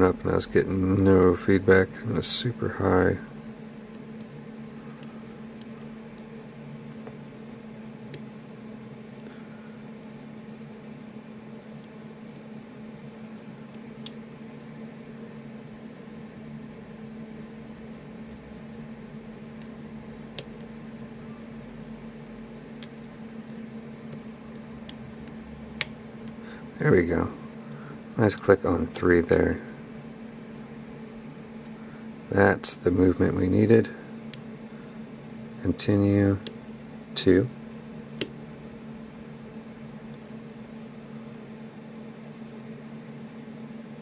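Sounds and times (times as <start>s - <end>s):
steady low hum: 0.0s - 44.0s.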